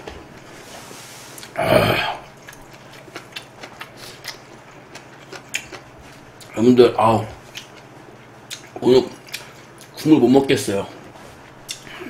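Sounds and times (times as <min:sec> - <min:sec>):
mouth clicks and lip smacks: 0:08.5 - 0:09.5.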